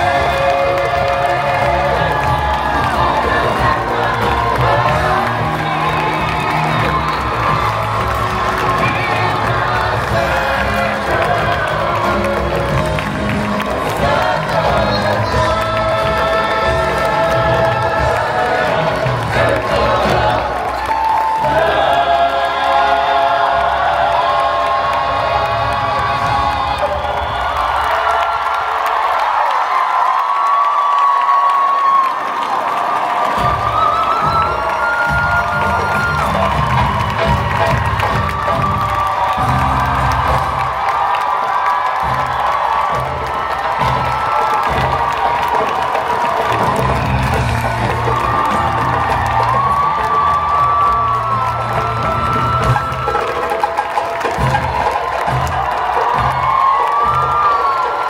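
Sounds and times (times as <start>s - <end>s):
loud music: 0.0s - 29.6s, 33.1s - 58.0s
crowd cheering and whooping: 0.0s - 58.0s.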